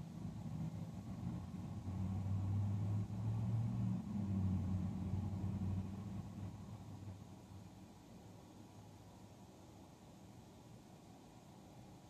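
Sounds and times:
vehicle engine passing by: 0.2s - 7.3s.

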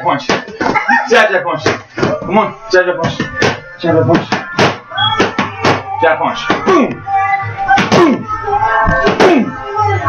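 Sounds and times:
background music: 0.0s - 10.0s
boxing gloves hitting mitts: 3.0s - 5.9s, 7.8s - 8.2s, 9.0s - 9.5s.

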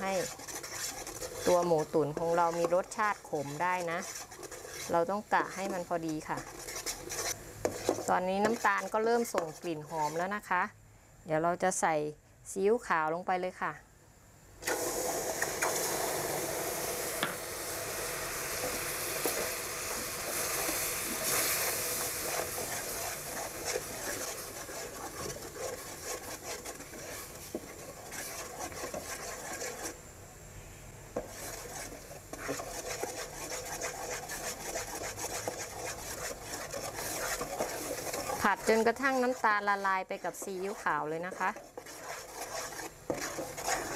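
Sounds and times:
metal spoon scraping a pot: 0.0s - 10.3s, 18.6s - 30.0s, 31.2s - 43.9s
sauce sizzling and bubbling: 14.6s - 30.0s, 31.2s - 43.9s.

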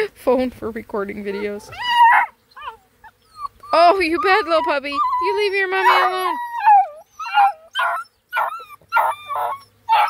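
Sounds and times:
puppies yelping: 1.3s - 10.0s.

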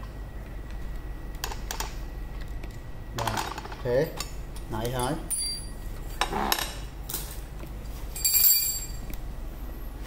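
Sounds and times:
metallic clink: 5.0s - 5.8s, 8.2s - 9.0s.

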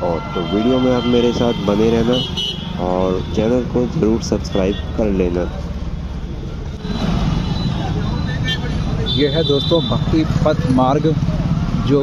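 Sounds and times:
motorcycles on road: 0.0s - 12.0s.

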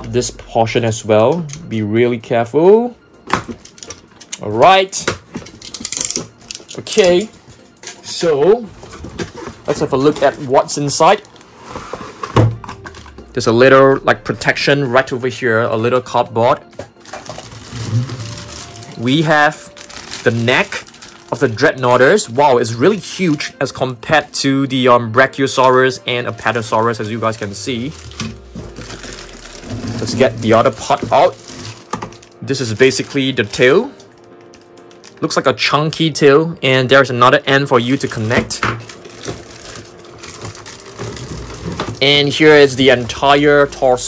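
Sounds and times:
plastic and cardboard rustling: 5.0s - 13.9s, 16.8s - 23.9s, 25.2s - 35.4s, 37.6s - 44.0s
plastic packaging crinkling: 8.7s - 13.3s, 17.0s - 23.5s, 25.5s - 35.4s, 37.7s - 44.0s.

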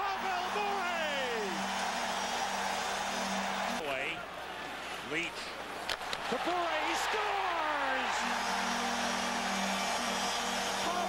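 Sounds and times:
arena crowd cheering: 0.0s - 5.0s, 5.8s - 11.0s.

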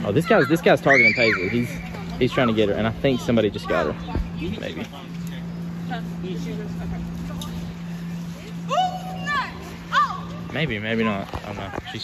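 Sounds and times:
distant young people calling out: 0.0s - 12.0s
low machine hum: 0.0s - 12.0s.

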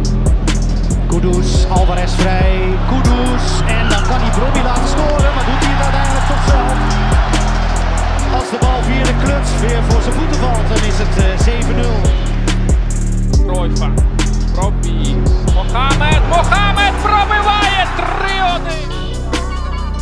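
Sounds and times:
hip-hop beat with deep bass: 0.0s - 20.0s
match crowd noise: 0.8s - 13.4s, 15.3s - 20.0s
commentator talking: 1.9s - 6.8s, 14.6s - 19.2s.

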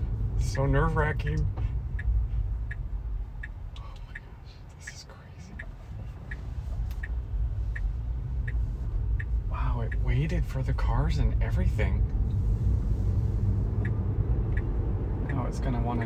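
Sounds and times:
low road rumble in car cabin: 0.0s - 16.0s
turn signal ticking: 0.0s - 16.0s.

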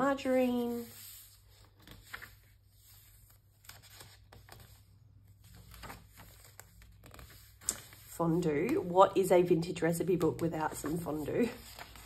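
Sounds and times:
paper pages rustling: 0.4s - 9.3s, 10.0s - 12.0s
paper flick: 5.6s - 8.1s.

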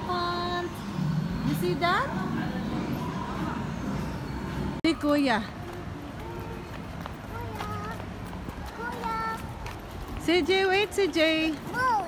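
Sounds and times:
murmur of voices: 0.0s - 9.8s.

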